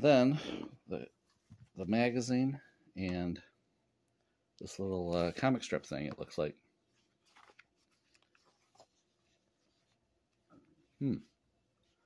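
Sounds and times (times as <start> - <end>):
paper rustling: 6.9 - 10.5.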